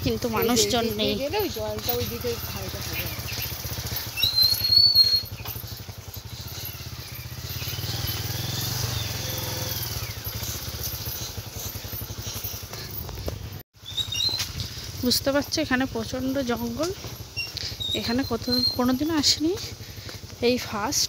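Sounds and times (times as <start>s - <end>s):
motorbike engine idling: 0.0s - 21.0s.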